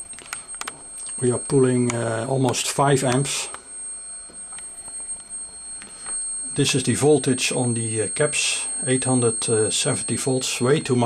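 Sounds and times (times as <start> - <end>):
fainter higher tone: 0.0 - 11.0.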